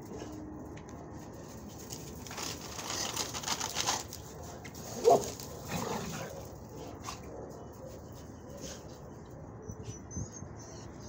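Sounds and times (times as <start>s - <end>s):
dog barking: 4.4s - 8.8s.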